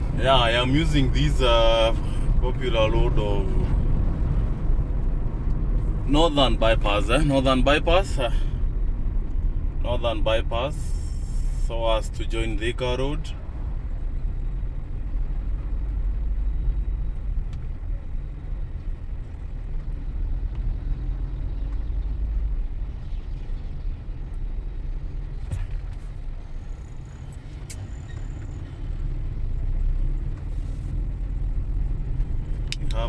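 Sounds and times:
car engine and tyre rumble: 0.0s - 33.0s.

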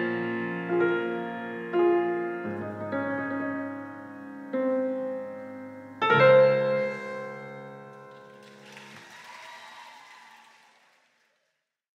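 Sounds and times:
grand piano chord: 0.0s - 8.7s
faint audience applause: 6.9s - 11.8s.

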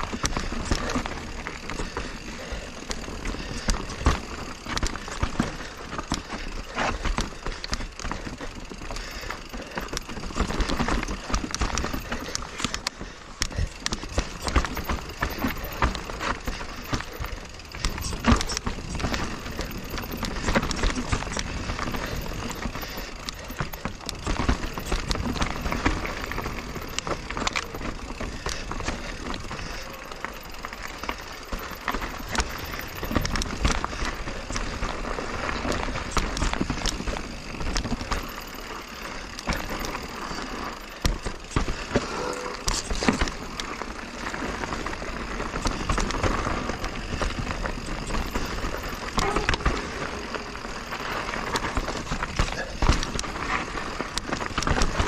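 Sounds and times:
bike clattering over bumps: 0.0s - 55.0s
bike tyres over dirt: 0.0s - 55.0s.

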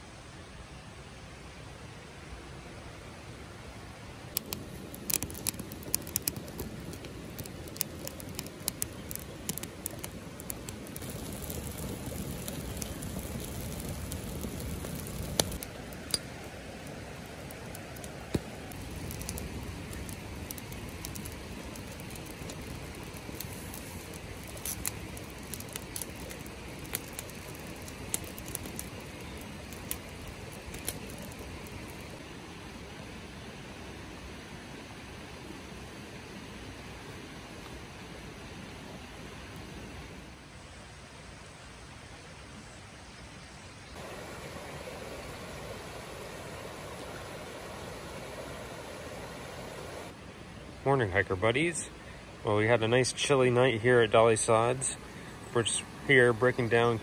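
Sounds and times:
steady background hiss: 0.0s - 57.0s
campfire crackling: 4.2s - 40.4s, 43.9s - 57.0s
sharp fire pops: 4.3s - 32.2s.

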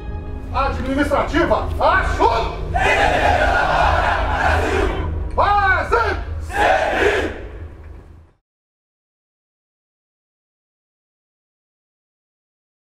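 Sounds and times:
soldiers shouting in unison: 2.2s - 5.1s, 5.8s - 7.6s.

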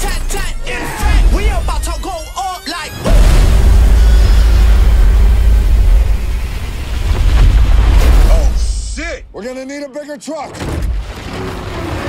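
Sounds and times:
explosion boom with deep rumble: 3.1s - 9.0s.

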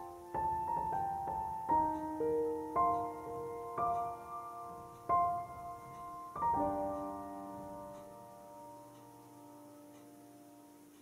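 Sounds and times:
soft piano chord ringing: 0.0s - 11.0s.

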